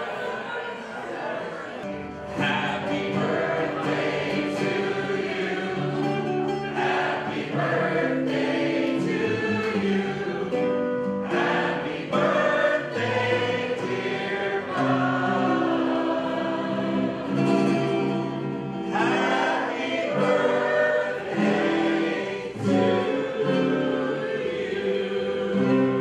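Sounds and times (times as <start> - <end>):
choir singing held chords: 0.0 - 26.0.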